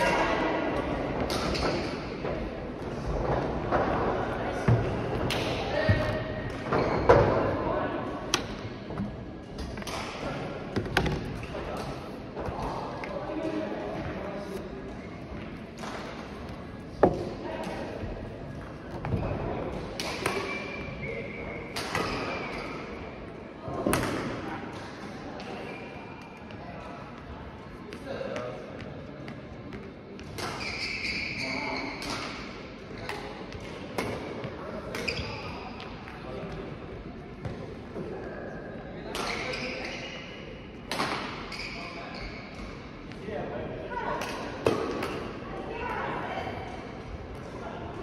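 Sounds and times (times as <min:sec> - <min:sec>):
court shoes squeaking: 0:05.9 - 0:07.4, 0:20.0 - 0:22.9, 0:29.6 - 0:33.1, 0:34.9 - 0:35.9, 0:39.2 - 0:40.4, 0:41.0 - 0:42.8.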